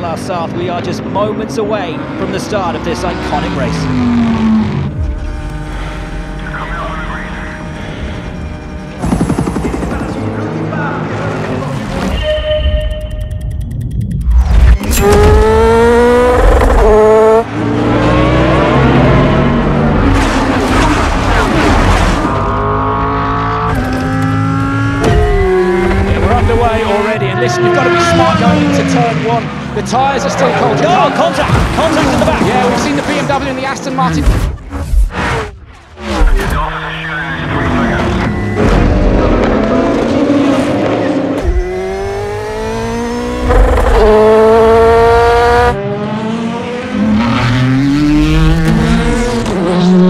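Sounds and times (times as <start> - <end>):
race car engines revving: 0.0 - 12.1, 14.4 - 50.0.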